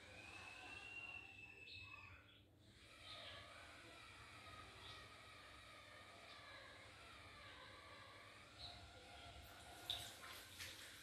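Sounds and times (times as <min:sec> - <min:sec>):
faint high whistling tone: 0:00.0 - 0:05.4.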